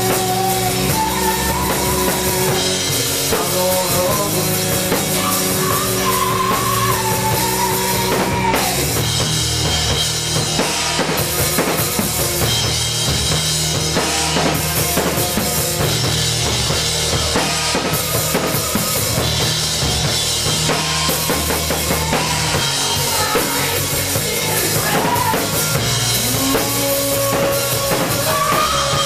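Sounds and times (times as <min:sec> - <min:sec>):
drum kit beat: 0:00.0 - 0:29.0
live rock band playing: 0:00.0 - 0:29.0.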